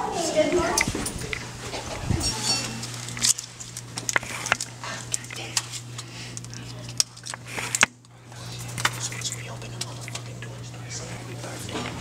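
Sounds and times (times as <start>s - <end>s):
steady low hum: 0.0s - 12.0s
candles clicking and clattering: 2.4s - 12.0s.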